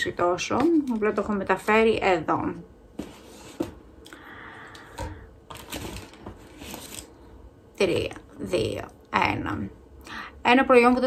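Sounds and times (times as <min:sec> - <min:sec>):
packaging rustle: 0:05.5 - 0:07.2.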